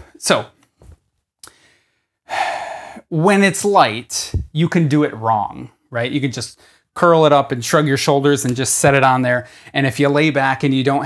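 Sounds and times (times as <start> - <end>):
man breathing out: 1.4 - 3.1.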